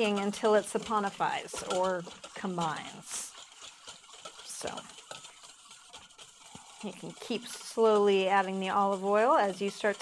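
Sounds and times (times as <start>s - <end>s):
whisk clicking against metal bowl: 0.0s - 10.0s.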